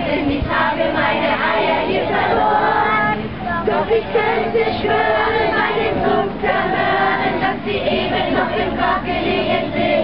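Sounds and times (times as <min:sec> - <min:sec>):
children singing in chorus: 0:00.0 - 0:10.0
women singing: 0:00.0 - 0:10.0.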